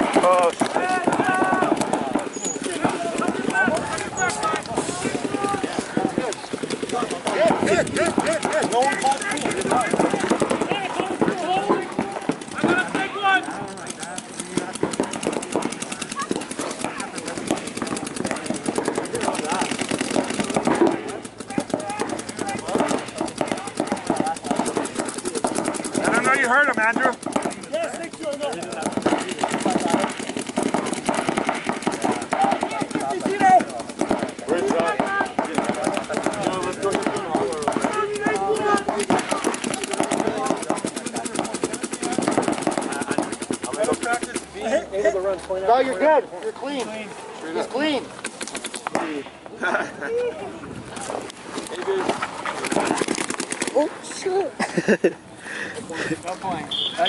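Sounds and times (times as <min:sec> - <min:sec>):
paintball markers firing pops: 0:00.0 - 0:44.5, 0:48.2 - 0:49.2, 0:50.9 - 0:53.8
players shouting: 0:00.0 - 0:45.2, 0:56.5 - 0:57.0.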